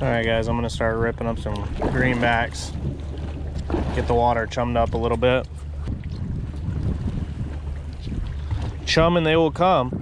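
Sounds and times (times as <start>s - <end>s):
water against boat hull: 0.0s - 10.0s
wind on microphone: 0.0s - 10.0s.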